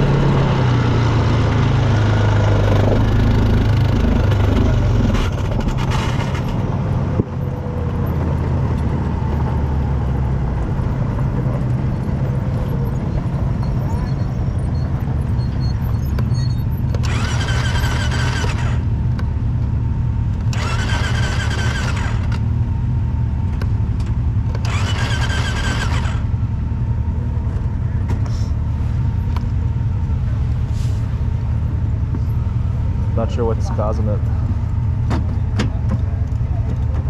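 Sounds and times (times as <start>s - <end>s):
low rumble: 0.0s - 16.0s
electric starter cranking: 17.0s - 18.8s, 20.5s - 22.4s, 24.6s - 26.3s.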